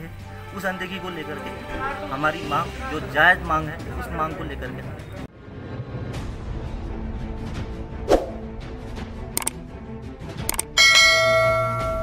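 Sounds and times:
quick click: 9.4s - 9.6s, 10.5s - 10.7s
notification bell ding: 10.8s - 12.0s.

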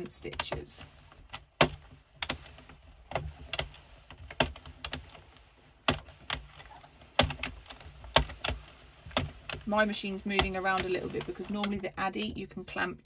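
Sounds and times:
knitting machine plastic clicks: 0.0s - 11.9s.

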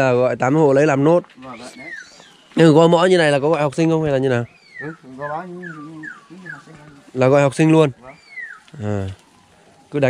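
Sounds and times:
low voice in background: 8.8s - 9.2s.

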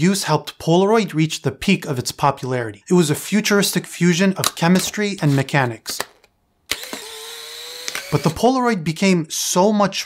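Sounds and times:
film ejection motor whirring: 6.7s - 8.4s.

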